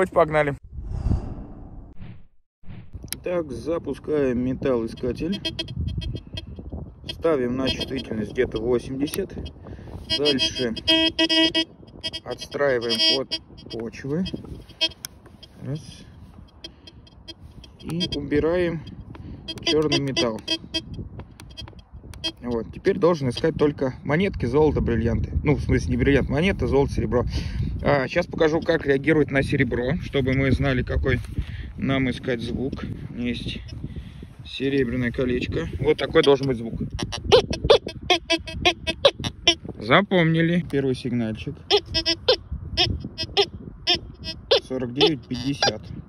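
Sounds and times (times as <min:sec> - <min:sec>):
metal detector beeping: 0:04.7 - 0:23.5, 0:35.8 - 0:39.7, 0:41.7 - 0:45.8.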